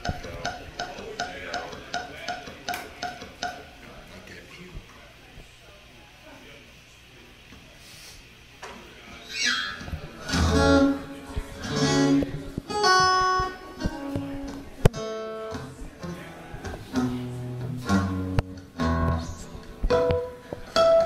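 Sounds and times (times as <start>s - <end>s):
acoustic guitar playing: 9.4s - 21.0s.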